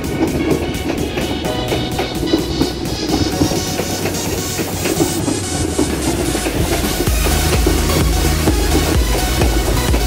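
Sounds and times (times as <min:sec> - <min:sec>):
train coaches rolling past: 0:00.0 - 0:10.0
wheels clicking over rail joints: 0:00.0 - 0:10.0.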